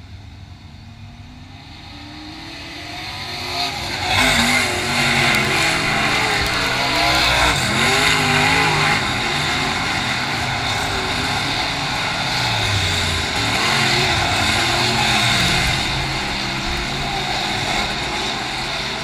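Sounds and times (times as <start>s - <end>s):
race car engines running hard: 0.0s - 19.0s.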